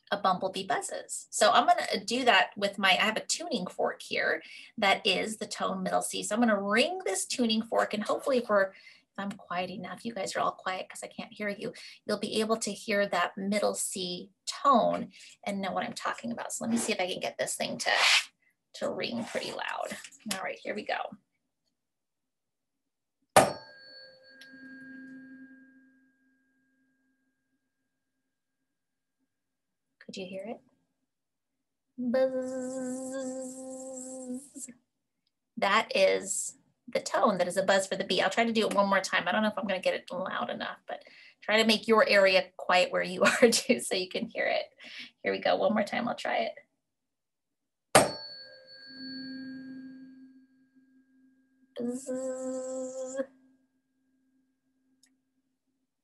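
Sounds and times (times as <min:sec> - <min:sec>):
tuning fork struck: 0:23.4 - 0:27.4, 0:48.1 - 0:51.8
tuning fork ringing tone: 0:23.5 - 0:28.1, 0:48.1 - 0:51.8.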